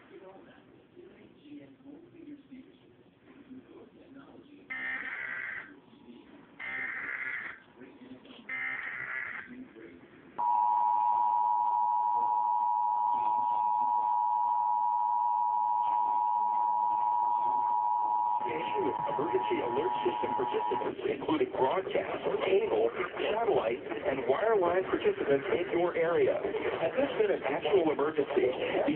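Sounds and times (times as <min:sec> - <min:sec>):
two-tone alert signal: 0:10.4 - 0:20.9.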